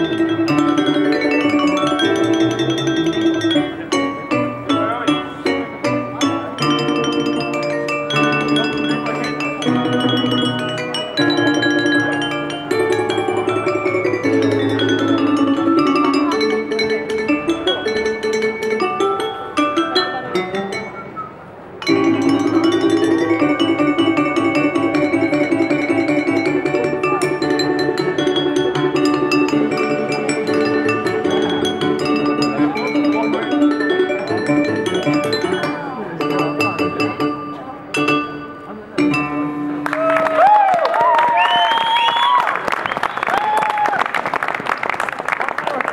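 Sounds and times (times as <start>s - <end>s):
glass harp ringing chords: 0.0s - 21.2s, 21.8s - 39.9s
deep bass notes: 21.9s - 39.9s.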